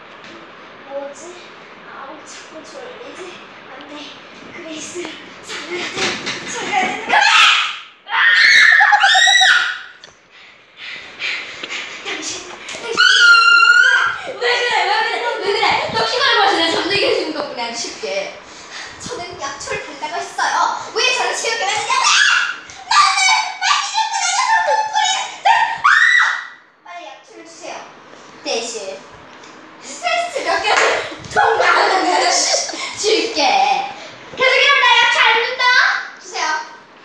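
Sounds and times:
girl screaming: 7.1s - 10.0s, 12.9s - 14.3s, 22.0s - 26.6s.

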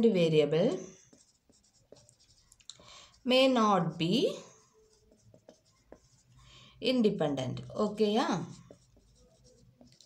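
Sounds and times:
marker writing on whiteboard: 0.3s - 10.0s
person speaking: 3.2s - 6.2s.

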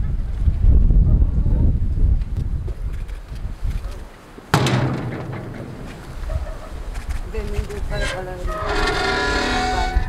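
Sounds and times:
metal gate clanking: 4.6s - 6.8s, 7.9s - 10.0s.

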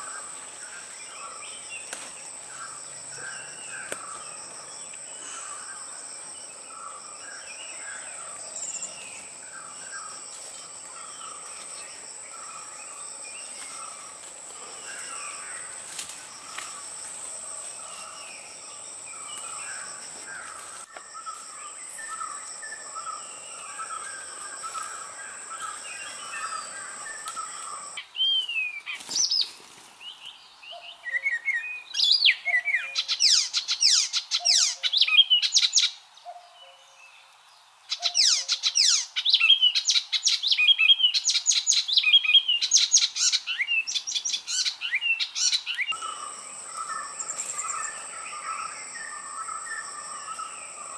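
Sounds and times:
high insect drone: 0.0s - 28.0s, 45.9s - 50.9s
birds chirping: 0.0s - 31.9s, 42.0s - 50.9s.

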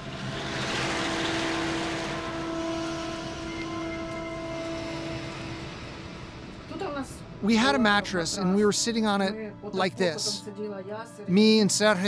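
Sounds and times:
armored vehicle engine rushing: 0.0s - 7.4s
steady hum: 0.0s - 9.2s.

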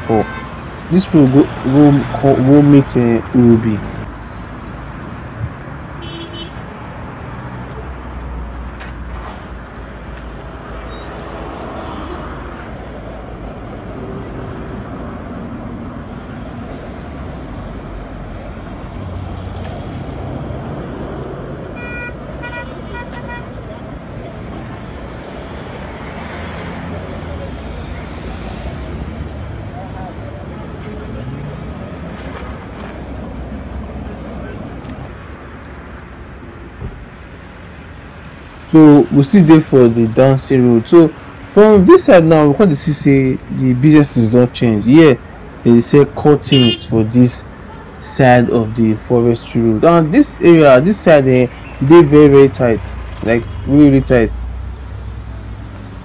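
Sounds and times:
vehicles passing on road: 0.0s - 56.0s
car horn short beeps: 6.0s - 6.6s, 21.8s - 23.5s, 46.5s - 46.9s.

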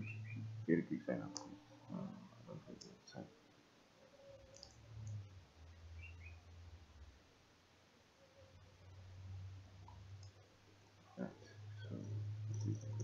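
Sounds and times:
low steady hum: 0.0s - 13.0s
computer mouse clicks: 4.4s - 5.2s.

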